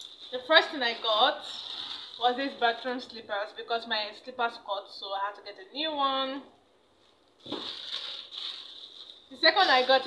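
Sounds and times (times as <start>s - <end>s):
shopping bag rustling: 0.0s - 3.2s, 7.4s - 10.0s.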